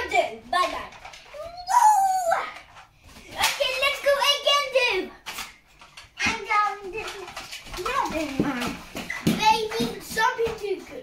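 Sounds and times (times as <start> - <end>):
young children calling and chattering: 0.0 - 11.0.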